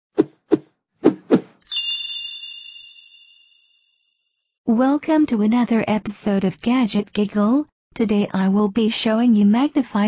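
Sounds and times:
bright bell-like ding: 1.6s - 4.1s.

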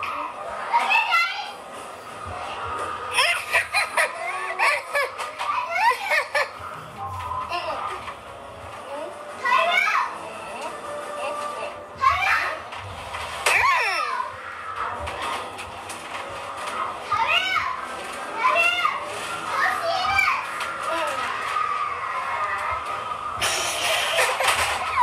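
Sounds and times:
noisy commotion: 0.0s - 25.0s.

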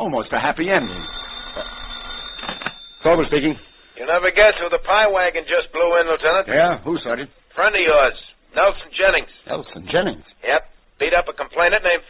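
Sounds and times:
telephone bell ringing: 0.4s - 5.4s.

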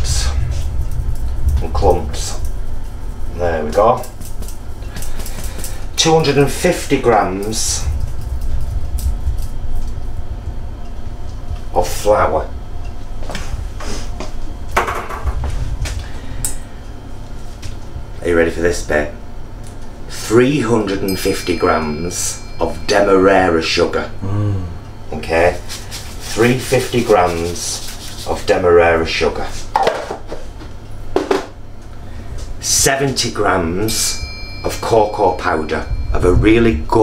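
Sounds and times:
low steady rumble: 0.0s - 27.2s, 30.7s - 37.0s
steady low hum: 0.0s - 37.0s
bowls and utensils clinking: 21.0s - 23.9s, 33.9s - 36.2s.

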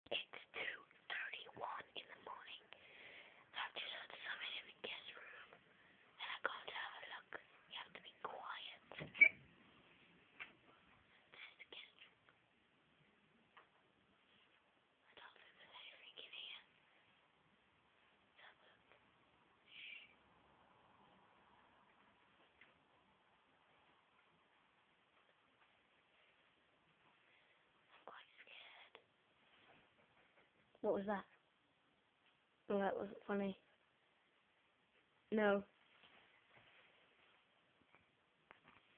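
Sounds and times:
person whispering: 0.0s - 2.9s, 3.5s - 5.6s, 6.2s - 9.2s, 11.2s - 12.2s, 15.0s - 16.8s, 18.4s - 19.0s, 19.6s - 20.2s, 27.9s - 29.1s.

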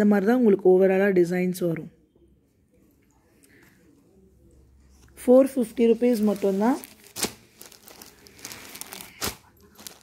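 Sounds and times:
plastic packaging crinkling: 5.8s - 10.0s.

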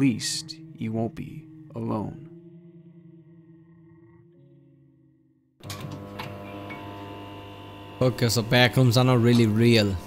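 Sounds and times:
dense steady drone: 0.0s - 5.6s
soft music: 0.0s - 5.6s.

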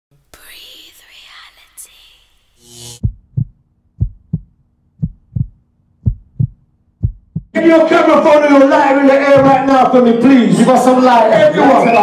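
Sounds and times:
breathy whisper-like noise: 0.3s - 2.5s
heartbeat-like double thumps: 3.0s - 7.6s.

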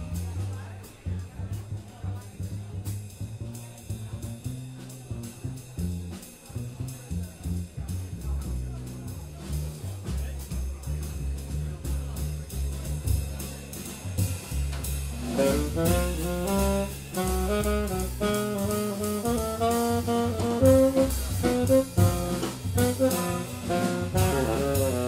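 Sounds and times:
jazz drum kit with cymbals: 0.0s - 25.0s
plucked string bass: 0.0s - 25.0s.

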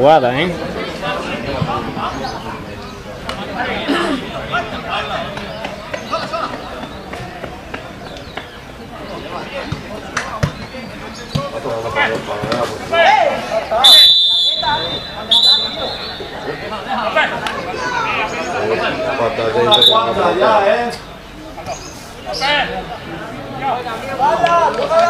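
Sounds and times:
spectators chatting: 0.0s - 25.0s
referee's whistle blasts: 13.8s - 16.4s, 19.7s - 20.2s.

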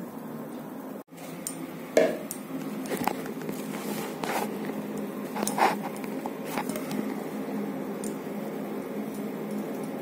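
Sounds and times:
hand scraping phone: 3.0s - 6.8s.

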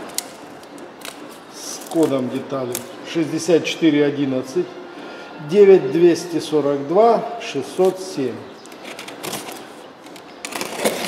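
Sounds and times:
utility knife cutting packing tape: 0.0s - 2.9s, 8.6s - 11.0s
cardboard rustling: 8.7s - 11.0s.

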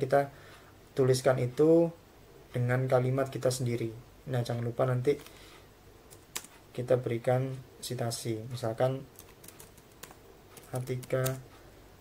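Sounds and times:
person speaking: 0.0s - 5.4s, 6.1s - 11.7s.

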